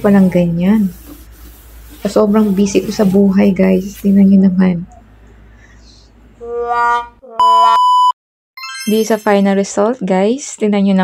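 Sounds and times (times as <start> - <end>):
electronic held tone: 7.4 - 8.8
higher steady electronic beep: 7.4 - 9.2.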